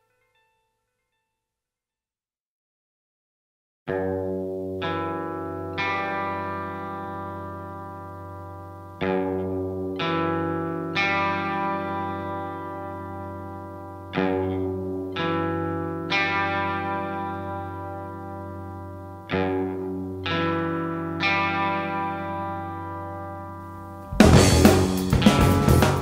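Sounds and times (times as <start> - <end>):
distorted electric guitar chords: 3.9 - 26.0.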